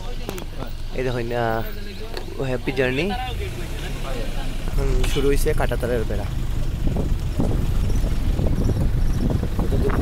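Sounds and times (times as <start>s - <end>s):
road vehicle rumble: 0.0s - 10.0s.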